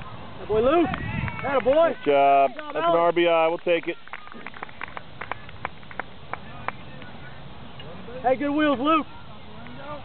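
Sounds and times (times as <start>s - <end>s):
outdoor background noise: 0.0s - 10.0s
hand claps: 2.5s - 2.9s, 3.5s - 7.1s.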